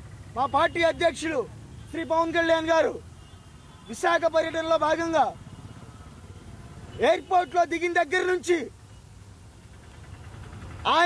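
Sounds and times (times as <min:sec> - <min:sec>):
man speaking: 0:00.4 - 0:03.0, 0:03.9 - 0:05.4, 0:07.0 - 0:08.7.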